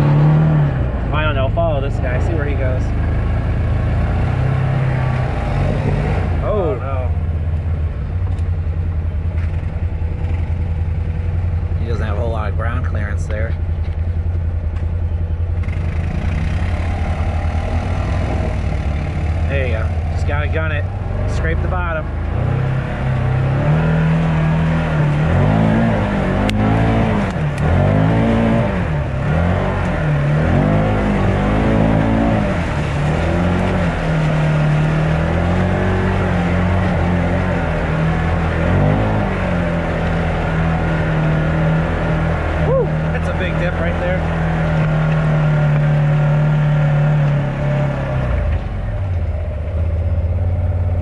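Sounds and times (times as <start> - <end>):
vehicle engine running: 0.0 - 51.0.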